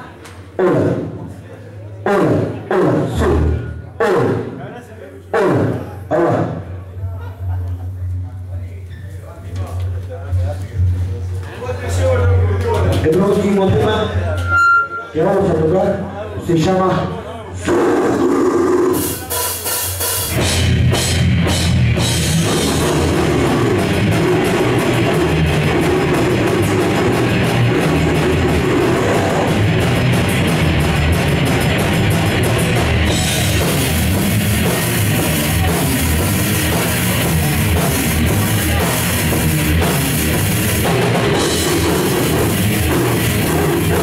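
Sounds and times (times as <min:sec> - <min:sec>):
distorted guitars and bass: 0:00.0 - 0:01.4, 0:02.0 - 0:04.7, 0:05.3 - 0:44.0
held tone: 0:14.0 - 0:15.2
heavy metal band playing live: 0:17.6 - 0:44.0
drum kit with cymbals: 0:17.7 - 0:44.0.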